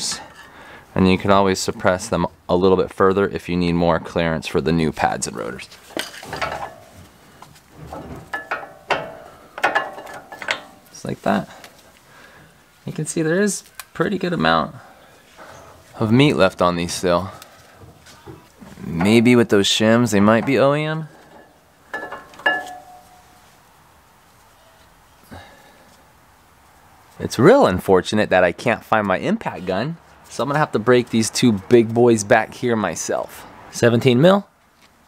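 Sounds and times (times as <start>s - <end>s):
metallic clicks and knocks: 7.9s - 10.9s
metallic clinks of brake pads: 8.3s - 10.9s, 21.2s - 23.3s.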